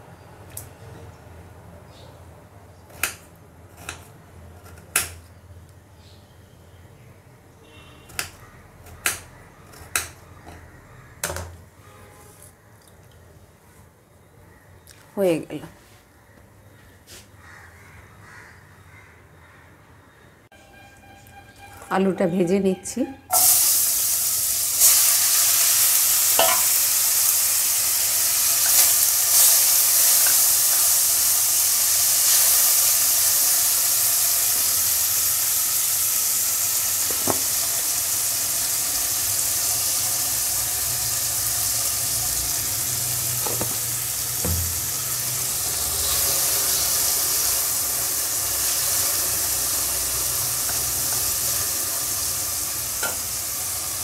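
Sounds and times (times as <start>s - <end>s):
potatoes sizzling in oil: 23.3s - 54.0s.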